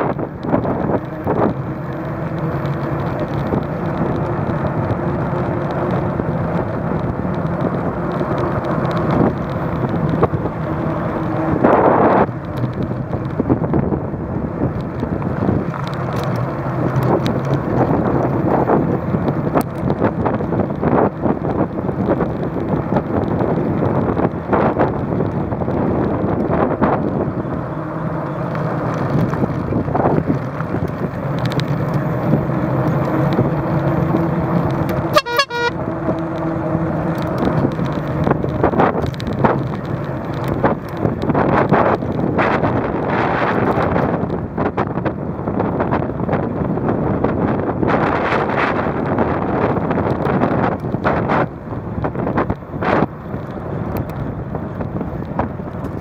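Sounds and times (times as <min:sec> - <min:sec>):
wind buffeting microphone: 0:00.0 - 0:35.1, 0:35.8 - 0:56.0
bicycle rattles and knocks: 0:00.0 - 0:56.0
bicycle tyres rolling on asphalt: 0:00.0 - 0:56.0.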